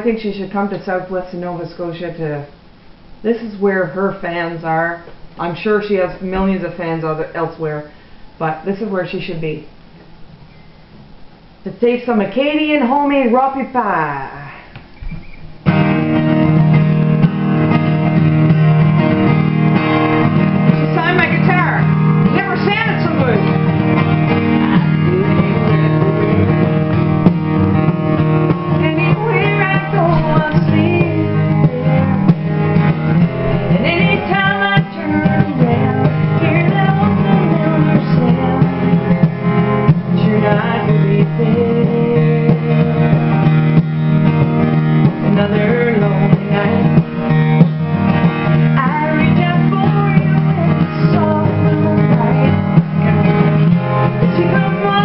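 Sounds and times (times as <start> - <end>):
acoustic guitar strummed: 15.1 - 55.0
woman singing: 20.9 - 23.5, 24.8 - 25.9, 28.7 - 32.5, 33.7 - 39.3, 39.9 - 43.3, 45.1 - 47.2, 48.8 - 52.7, 54.2 - 55.0.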